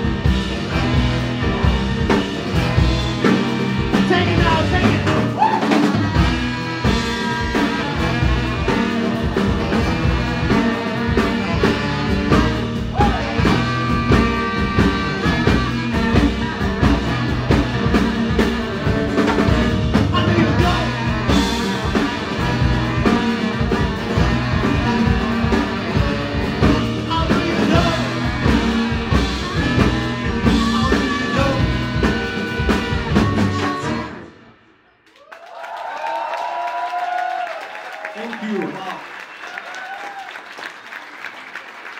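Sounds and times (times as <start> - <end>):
drum kit: 0.0 - 34.3
live blues-rock band: 0.0 - 34.4
saxophones: 0.0 - 35.0
person singing: 20.1 - 34.2.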